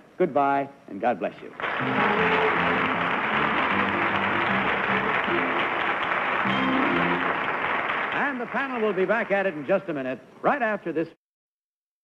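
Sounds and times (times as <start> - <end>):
audience applauding: 1.6 - 9.6
music with held notes: 1.7 - 7.5.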